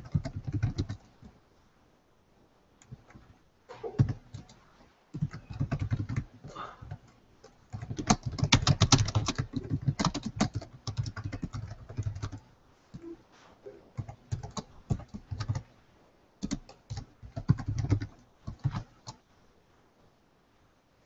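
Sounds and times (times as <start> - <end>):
computer keyboard typing: 0.0 - 1.2, 4.0 - 13.0, 14.0 - 15.7, 16.4 - 19.2.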